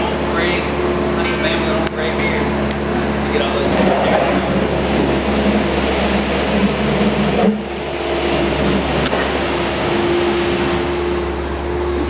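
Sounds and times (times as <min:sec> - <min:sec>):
loud mechanical drone: 0:00.0 - 0:12.0.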